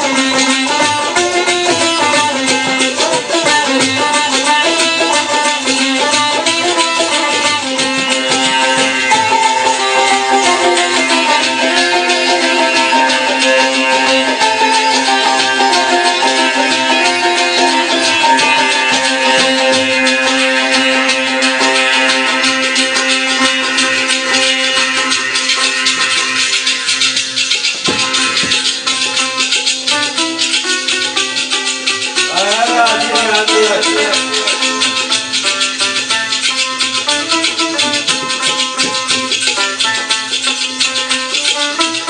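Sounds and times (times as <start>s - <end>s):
sitars playing folk tune: 0.0s - 42.0s.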